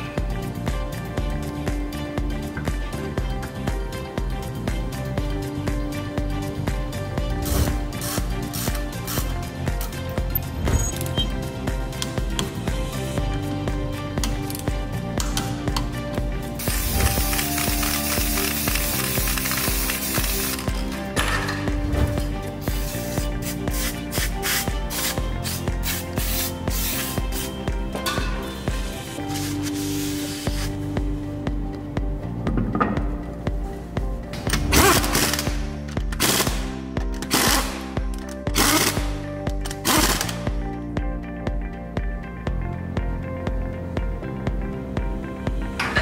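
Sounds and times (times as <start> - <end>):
background music with beat: 0.0 - 46.0
aerosol can spraying: 16.6 - 20.9, 22.6 - 27.6, 28.8 - 30.8
pneumatic impact wrench rattling: 16.6 - 21.7, 34.5 - 40.5.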